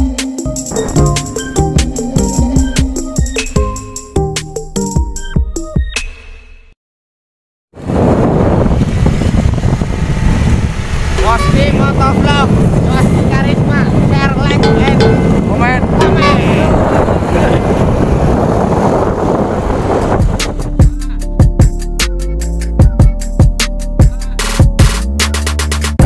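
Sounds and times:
wind rushing over microphone: 7.8 - 20.9.

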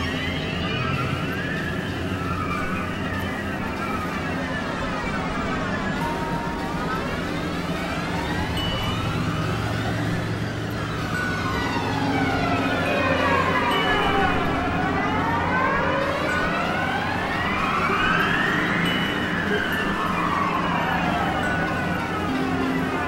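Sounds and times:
synthesizer drone gliding in pitch: 0.0 - 23.0.

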